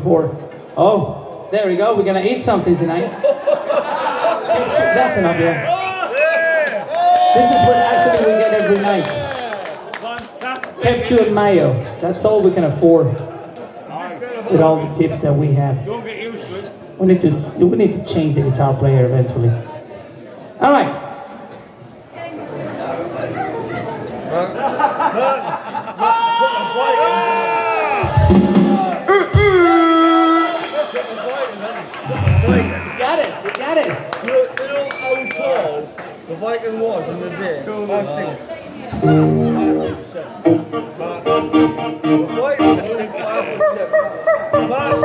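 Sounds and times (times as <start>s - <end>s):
people talking indistinctly: 28.3s - 45.0s
bass guitar through amplifier: 32.0s - 33.0s, 39.0s - 45.0s
electric guitar through amplifier: 39.0s - 45.0s.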